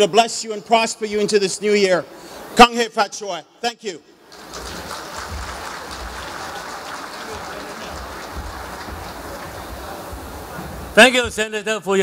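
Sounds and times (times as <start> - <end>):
audience applauding: 4.3 - 10.2.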